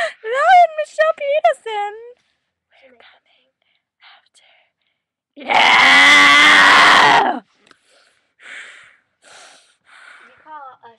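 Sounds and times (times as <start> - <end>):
person whispering: 2.8 - 4.6.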